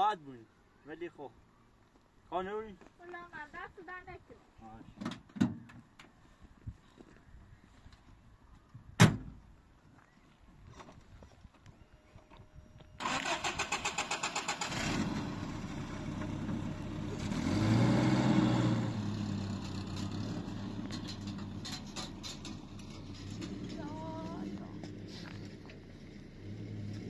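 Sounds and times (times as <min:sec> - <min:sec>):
truck door slamming: 0:09.0 - 0:09.4
starter cranking engine: 0:13.0 - 0:15.2
truck engine running and revving: 0:13.9 - 0:27.0.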